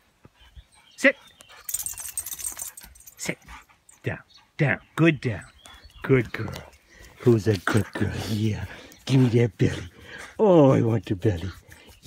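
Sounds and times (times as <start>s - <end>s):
light jingle: 1.5s - 4.1s.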